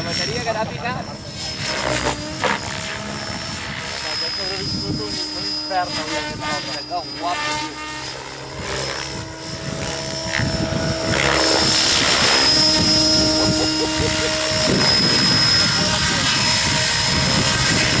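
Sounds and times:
model helicopter rotor drone: 0.0s - 18.0s.

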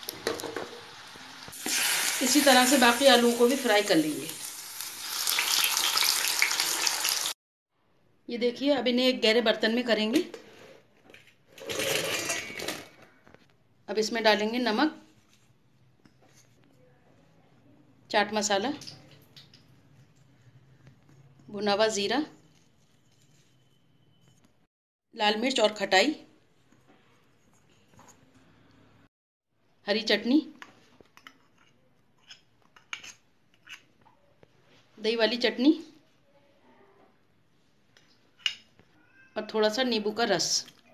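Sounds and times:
kitchen utensils clinking: 11.6s - 13.1s.

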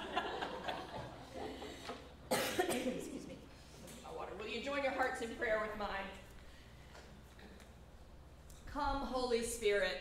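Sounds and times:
person coughing: 2.3s - 3.4s.

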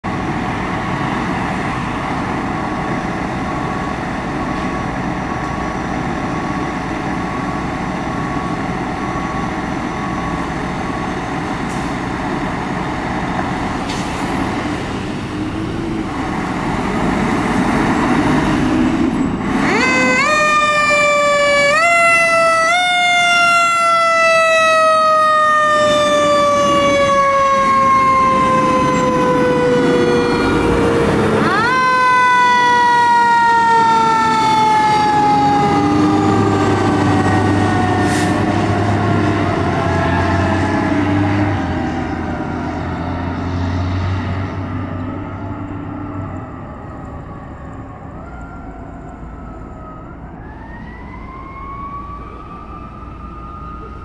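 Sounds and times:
diesel engines running: 0.0s - 54.0s.

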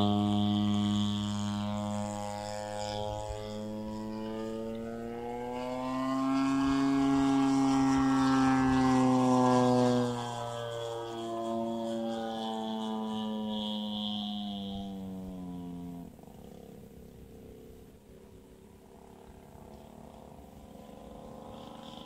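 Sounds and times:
model airplane engine and propeller drone: 0.0s - 22.0s.

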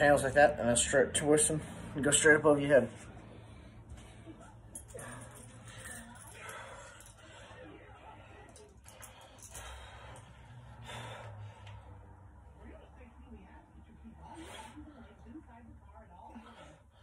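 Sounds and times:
breaths: 1.4s - 2.0s, 3.0s - 12.4s.

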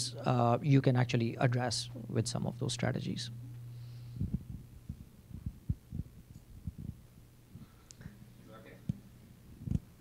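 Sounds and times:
microphone handling thumps: 4.1s - 8.2s.

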